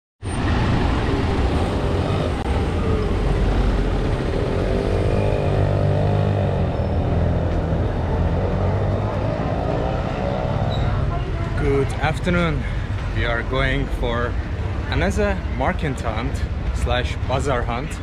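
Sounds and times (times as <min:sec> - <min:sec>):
vehicle engines rumbling: 0:00.2 - 0:18.0.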